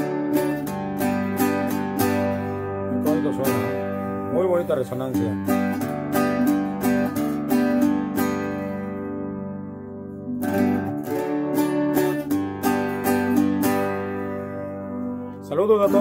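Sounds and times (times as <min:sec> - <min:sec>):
guitar picking notes and chords: 0:00.0 - 0:16.0.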